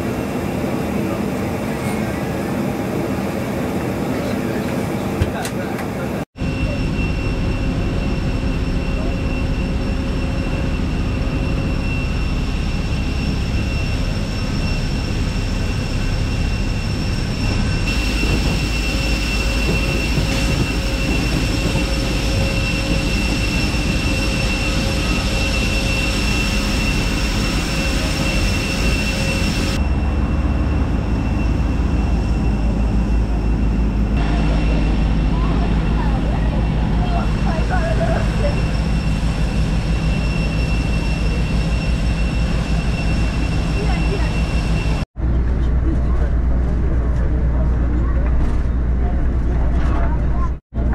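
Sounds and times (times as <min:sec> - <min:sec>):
jet engine whine and drone: 0:00.0 - 0:50.9
high whine tone: 0:06.4 - 0:45.4.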